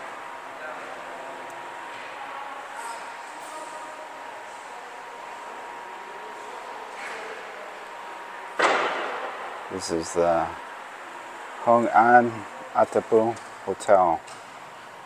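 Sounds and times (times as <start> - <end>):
faint distant voices: 0.0 - 14.2
faint steady hum: 0.0 - 15.0
sudden loud burst of noise: 8.6 - 9.5.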